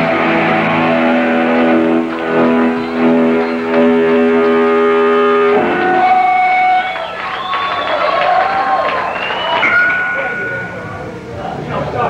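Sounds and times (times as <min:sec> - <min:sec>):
distorted electric guitar chord ringing: 0:00.0 - 0:07.0, 0:09.6 - 0:12.0.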